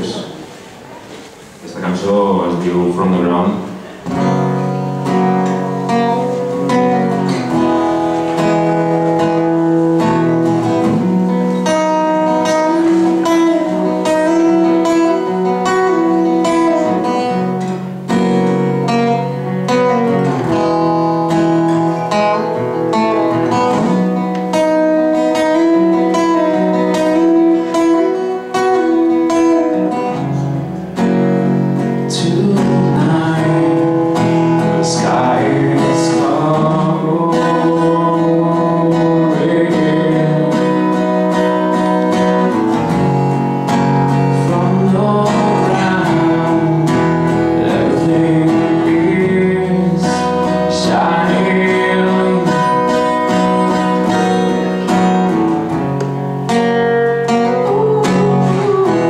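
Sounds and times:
acoustic guitar strumming chords: 0:00.0 - 0:59.0.

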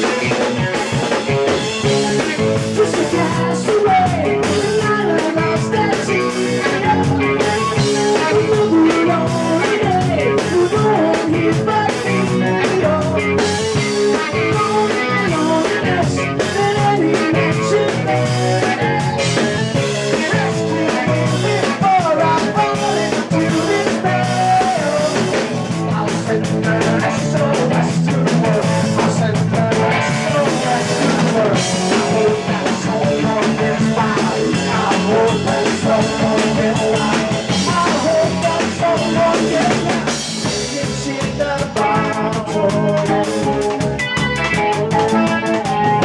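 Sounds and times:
drum kit: 0:00.0 - 0:46.0
electric bass: 0:00.0 - 0:46.0
electric guitar: 0:00.0 - 0:46.0
person singing: 0:00.0 - 0:46.0.

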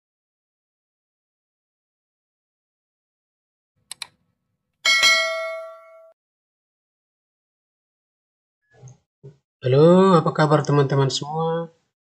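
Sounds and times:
mouse clicks: 0:03.9 - 0:04.2
bright bell ding: 0:04.8 - 0:06.2.

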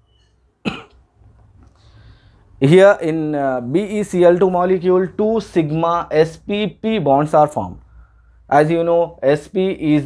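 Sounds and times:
man coughing: 0:00.6 - 0:01.0.

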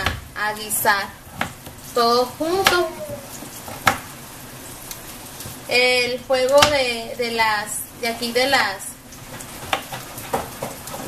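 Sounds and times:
vegetables sizzling in a frying pan: 0:00.0 - 0:11.0.

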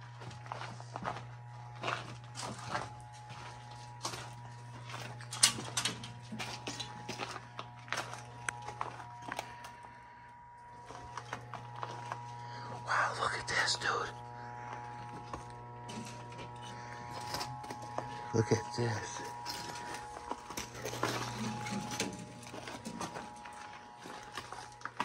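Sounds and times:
footsteps crunching on debris: 0:00.0 - 0:13.0, 0:14.5 - 0:25.0
low hum: 0:00.0 - 0:25.0.

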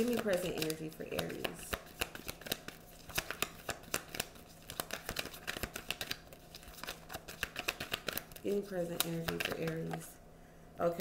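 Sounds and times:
playing cards being shuffled: 0:00.0 - 0:10.1.

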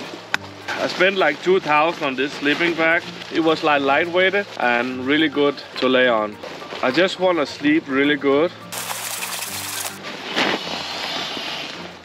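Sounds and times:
nylon sack rustling: 0:08.8 - 0:11.8.

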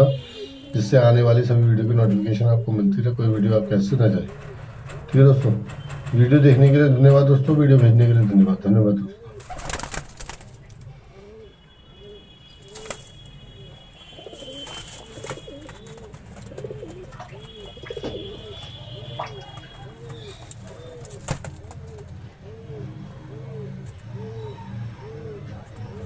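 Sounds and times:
pigeons cooing: 0:00.0 - 0:26.0.

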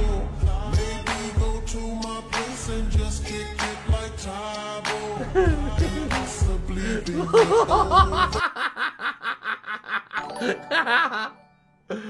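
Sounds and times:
background music: 0:00.0 - 0:08.6, 0:10.2 - 0:12.0
man laughing hard: 0:05.2 - 0:12.0.

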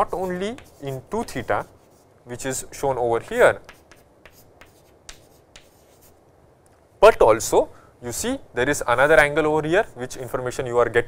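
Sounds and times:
chalk tapping: 0:00.0 - 0:02.0, 0:03.3 - 0:06.2
chalk writing on chalkboard: 0:00.0 - 0:02.1, 0:03.3 - 0:06.2.

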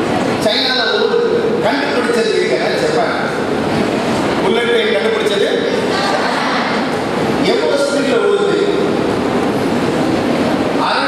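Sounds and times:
loud steady background noise: 0:00.0 - 0:11.0
man speaking into microphone: 0:00.4 - 0:03.5, 0:04.4 - 0:05.9, 0:07.4 - 0:09.0, 0:10.8 - 0:11.0.

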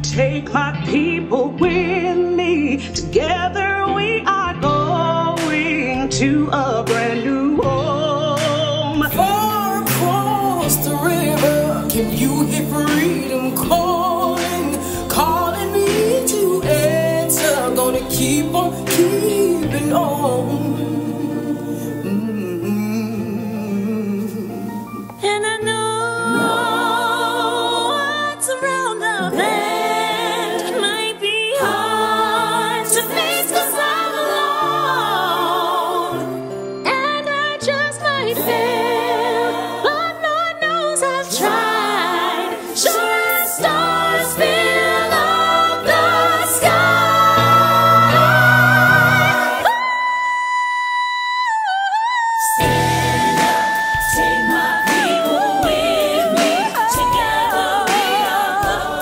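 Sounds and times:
gospel choir singing: 0:04.6 - 0:50.8, 0:52.4 - 0:59.0
instrumental backing: 0:52.6 - 0:59.0.

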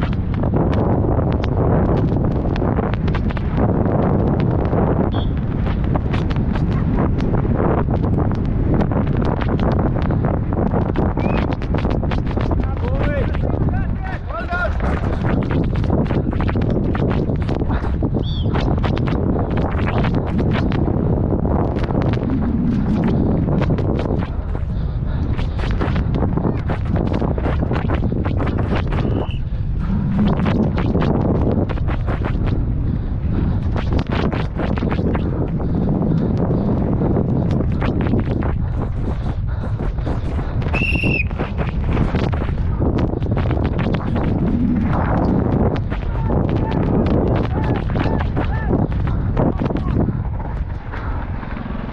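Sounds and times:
wind rushing on microphone: 0:00.0 - 0:51.9
high whistle: 0:05.1 - 0:05.4, 0:29.0 - 0:29.4, 0:40.7 - 0:41.3.

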